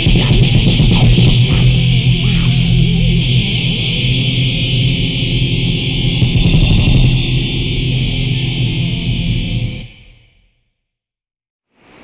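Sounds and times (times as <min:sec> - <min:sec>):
metal band electric guitars: 0:00.0 - 0:10.1.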